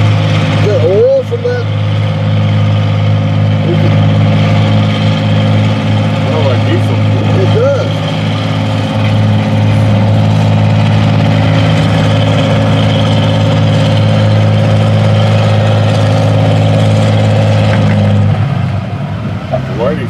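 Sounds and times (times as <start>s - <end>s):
tractor engine under load: 0.0s - 20.0s.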